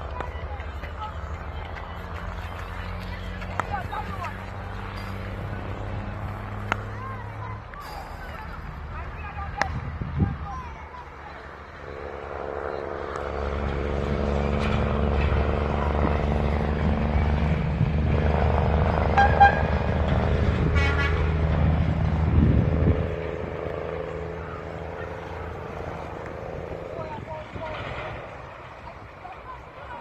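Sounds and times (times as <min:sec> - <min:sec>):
engine droning past: 0:00.0 - 0:30.0.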